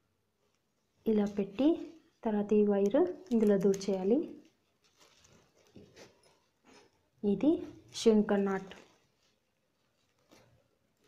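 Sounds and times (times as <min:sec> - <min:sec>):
plastic strips rustling: 0:00.4 - 0:07.1, 0:07.7 - 0:11.0.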